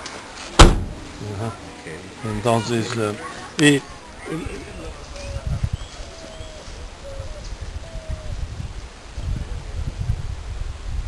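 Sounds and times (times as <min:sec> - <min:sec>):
wind rumbling on microphone: 0:03.8 - 0:11.0
bird whistling: 0:05.2 - 0:08.2.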